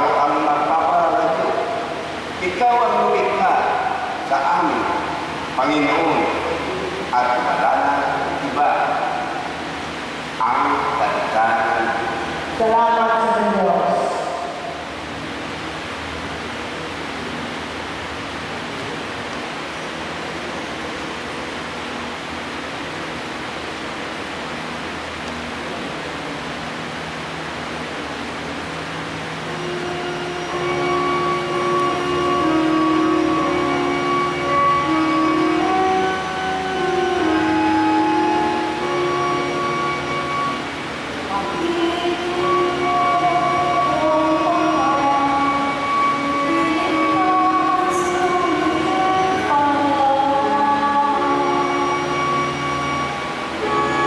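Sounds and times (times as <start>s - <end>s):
steady hiss: 0.0s - 54.0s
woman singing through microphone: 41.3s - 52.6s.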